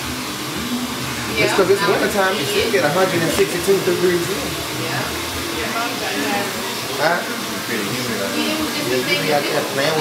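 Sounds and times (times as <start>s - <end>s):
hair dryer running: 0.0s - 10.0s
faint voices talking: 1.0s - 10.0s.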